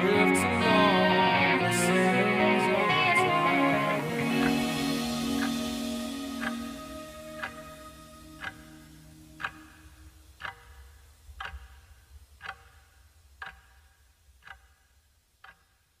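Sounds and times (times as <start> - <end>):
held song notes: 0.0 - 11.0
clock ticking: 0.0 - 16.0.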